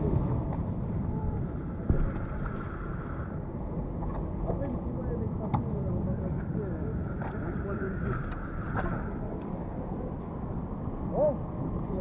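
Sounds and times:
street background: 0:00.0 - 0:12.0
faint voices: 0:04.4 - 0:12.0.

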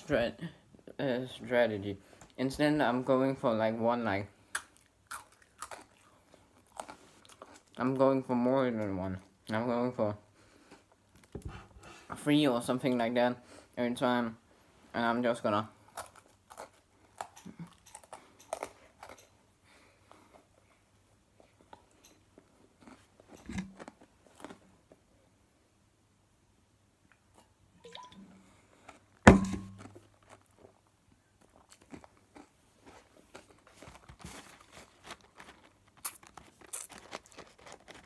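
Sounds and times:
dull bump: 0:29.3 - 0:29.8
pretzel sticks crunching: 0:31.6 - 0:38.0.

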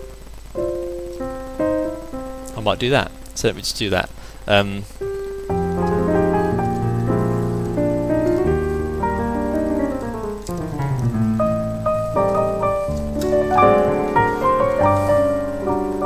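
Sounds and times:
digital piano playing jazz chords: 0:00.0 - 0:16.0.

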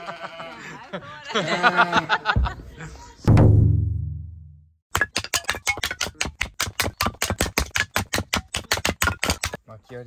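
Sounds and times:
hatchet chopping wood: 0:04.9 - 0:09.6.

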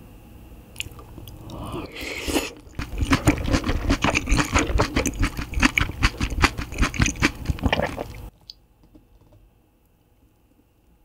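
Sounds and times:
close chewing with wet mouth sounds: 0:00.8 - 0:08.3.

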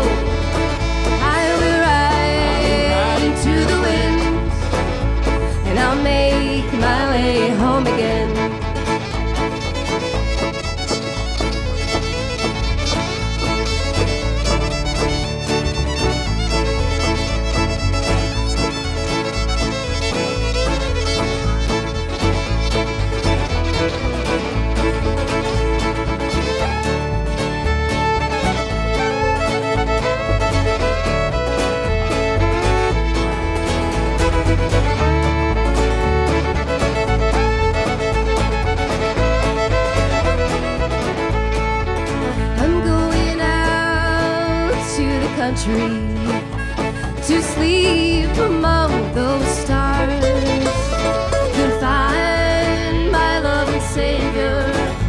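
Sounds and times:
country band playing: 0:00.0 - 0:55.0
fiddle lead: 0:00.0 - 0:55.0.

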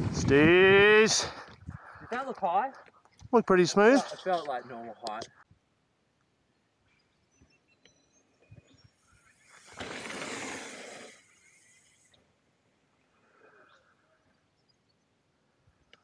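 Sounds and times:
bike clicks and rattles: 0:09.4 - 0:11.7.

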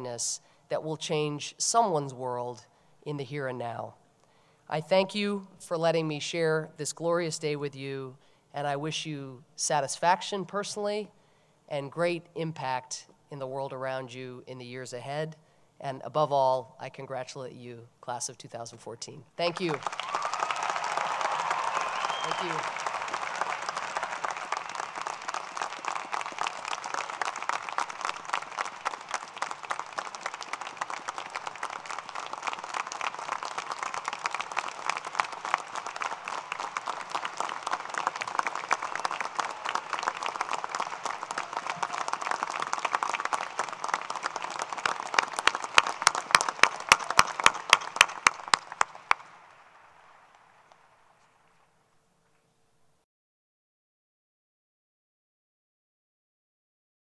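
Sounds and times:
crowd applauding: 0:19.4 - 0:51.2
loud sharp claps: 0:19.5 - 0:51.3.

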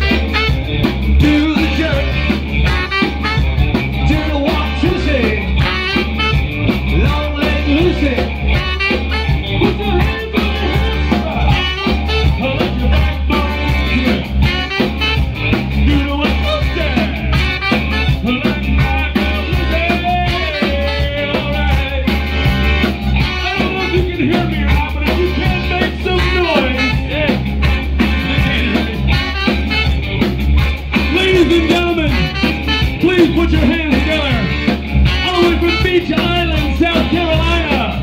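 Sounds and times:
soul band playing: 0:00.0 - 0:38.0
person singing: 0:04.0 - 0:06.1, 0:08.9 - 0:14.7, 0:15.9 - 0:22.7, 0:28.0 - 0:29.6.

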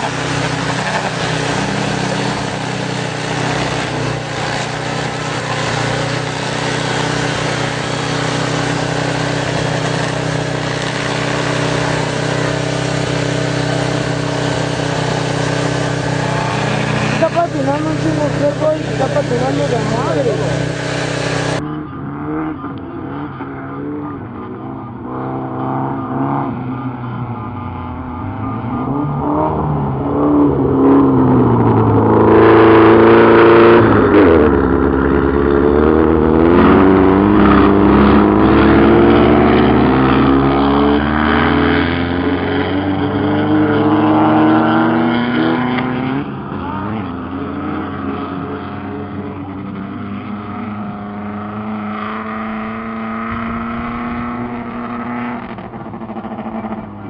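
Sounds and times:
race car engines revving: 0:00.0 - 0:57.0.

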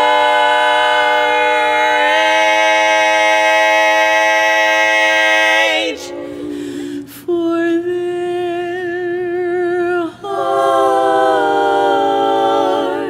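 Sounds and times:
women singing a cappella: 0:00.0 - 0:13.0.

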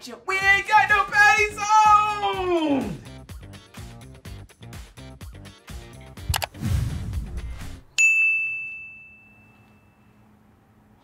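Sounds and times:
background music with a beat: 0:00.4 - 0:07.8
bright ding: 0:08.0 - 0:10.2.

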